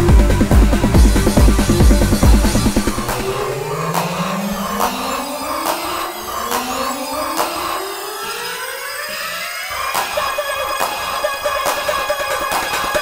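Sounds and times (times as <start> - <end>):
sharp percussion hits: 0.0 - 7.8
pulsing synth pattern: 0.0 - 13.0
rising synth sweeps: 0.0 - 13.0.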